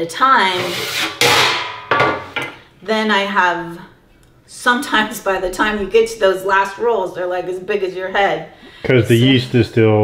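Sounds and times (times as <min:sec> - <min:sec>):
metal baking sheet clattering on wood: 0:01.1 - 0:02.6.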